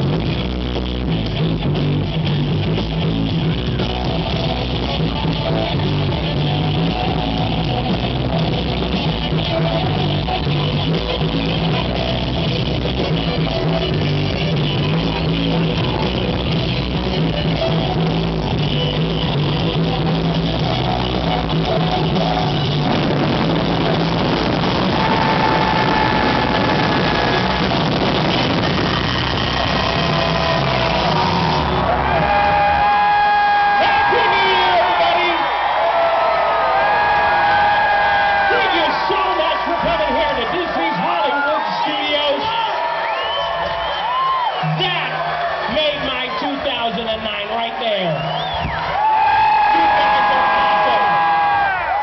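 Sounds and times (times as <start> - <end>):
crowd cheering and yelling: 0.0 - 52.0
live rock band playing: 0.0 - 52.0.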